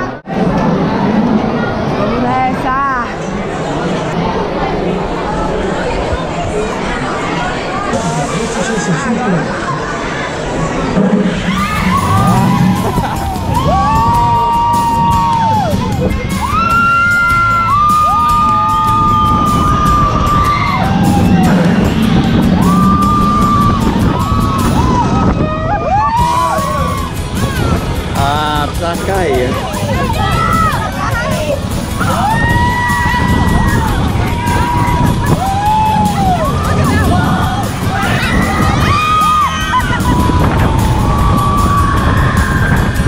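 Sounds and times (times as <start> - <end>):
wind buffeting microphone: 10.3 - 43.0
riders screaming: 11.3 - 15.8, 16.4 - 27.8, 32.0 - 43.0
train rattling on track: 19.0 - 25.2.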